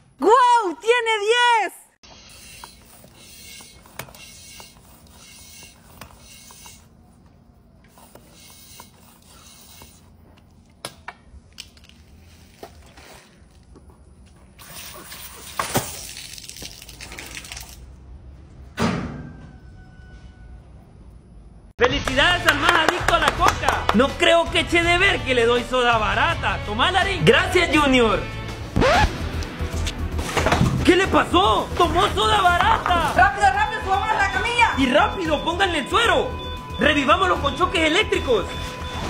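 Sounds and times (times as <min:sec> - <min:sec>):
hand pump strokes: 0:02.1 - 0:07.0, 0:07.9 - 0:10.2
water rocket hissing: 0:14.6 - 0:17.7.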